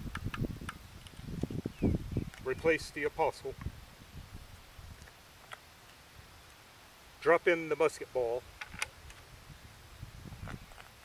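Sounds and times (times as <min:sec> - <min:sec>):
knocks and clicks of musket loading: 0:08.6 - 0:09.2.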